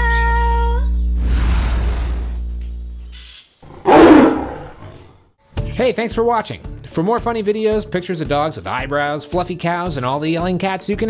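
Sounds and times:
big cat roar: 3.7s - 5.1s.

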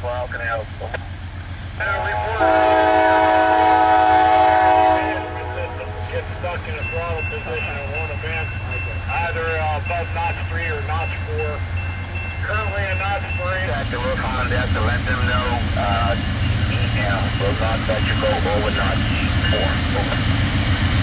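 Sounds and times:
voices: 0.0s - 20.4s
diesel engines droning: 0.0s - 21.0s
locomotive air horn chord: 1.8s - 8.4s, 13.7s - 20.2s.

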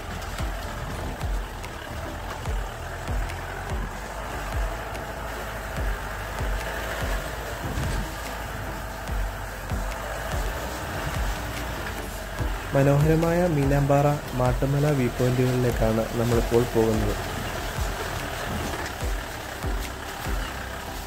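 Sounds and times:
background music: 0.0s - 21.0s
low thumps from bumps: 0.0s - 21.0s
off-road vehicle driving: 0.0s - 21.0s.

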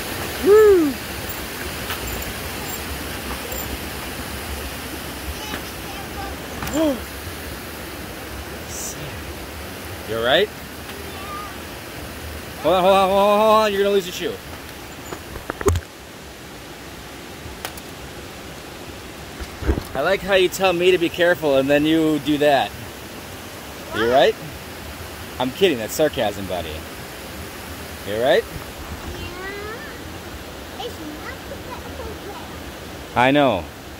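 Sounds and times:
rushing hiss: 0.0s - 15.0s
creek water rushing: 0.0s - 33.9s.

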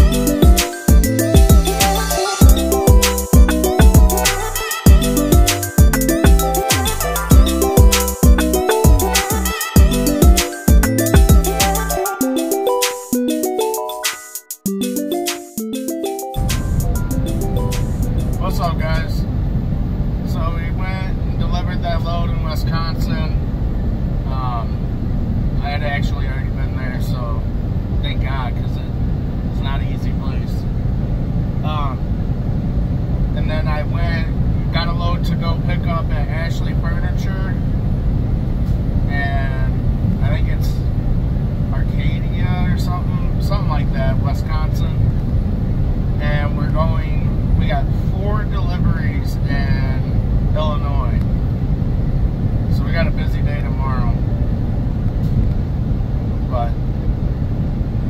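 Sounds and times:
truck engine and road rumble: 16.4s - 58.0s
man talking: 18.4s - 19.3s, 25.6s - 27.4s, 33.4s - 37.6s, 39.1s - 40.8s, 41.8s - 45.0s, 46.2s - 51.2s.

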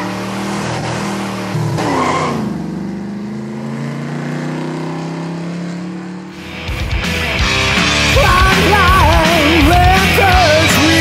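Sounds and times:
car engine revving and driving off: 0.0s - 6.4s.

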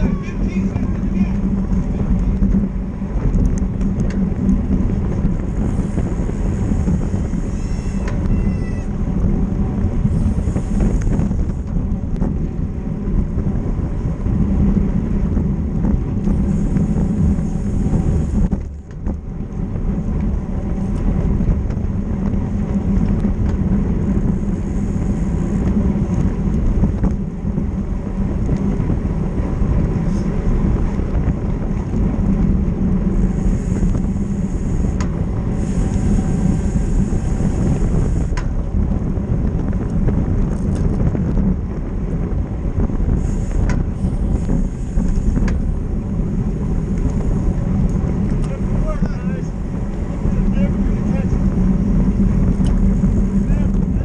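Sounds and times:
road and tyre noise: 0.0s - 54.0s
wind rushing over microphone: 0.0s - 54.0s.

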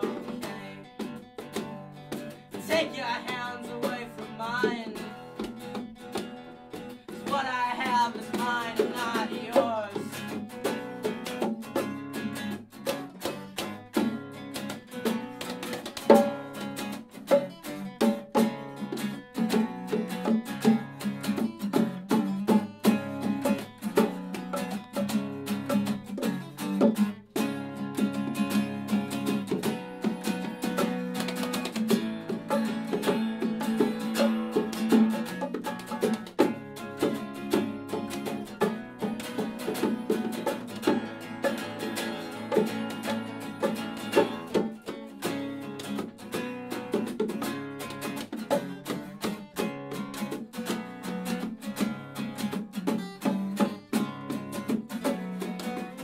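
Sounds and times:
acoustic guitars strummed: 0.0s - 56.0s
bongos played by hand: 0.0s - 56.0s.

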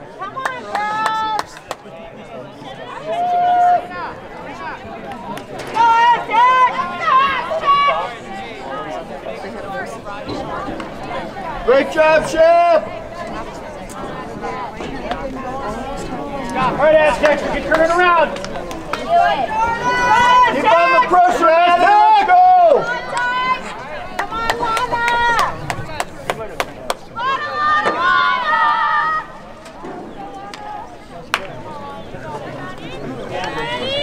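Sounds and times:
girls shouting and cheering: 5.7s - 8.1s, 19.0s - 25.7s, 27.2s - 29.4s.

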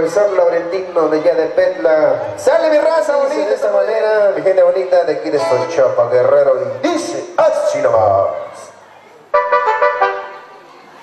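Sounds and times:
short brass riff: 9.3s - 10.5s.

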